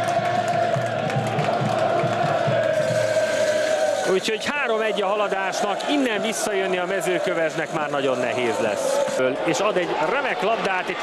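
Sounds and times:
crowd chanting and singing: 0.0 - 11.0
crowd noise: 0.0 - 11.0.

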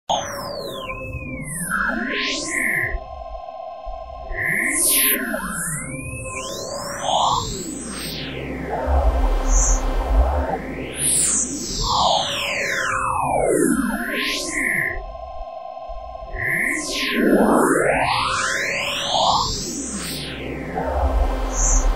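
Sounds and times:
sliding synthesizer tones: 8.3 - 11.1, 20.3 - 21.9
steady held tones: 20.5 - 21.9.

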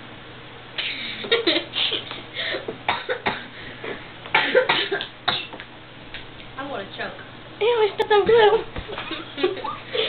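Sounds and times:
person coughing: 0.8 - 3.5, 4.3 - 5.6.

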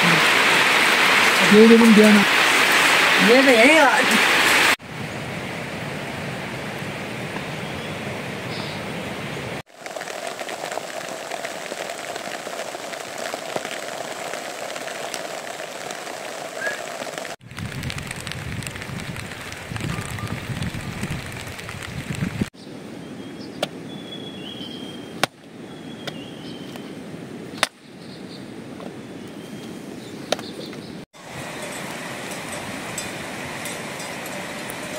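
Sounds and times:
steady rain hissing: 0.0 - 22.5, 31.2 - 34.9.

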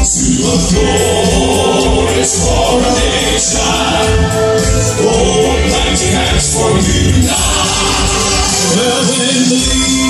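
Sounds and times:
instrumental accompaniment: 0.0 - 10.0
male quartet singing in harmony: 0.0 - 10.0.

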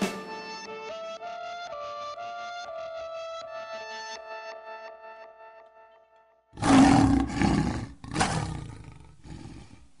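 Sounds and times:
lion roaring: 6.6 - 9.9.

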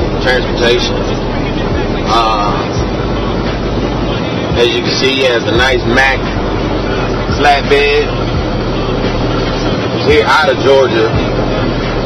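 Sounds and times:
road and wind noise: 0.0 - 12.0
truck engine drone: 0.0 - 12.0.

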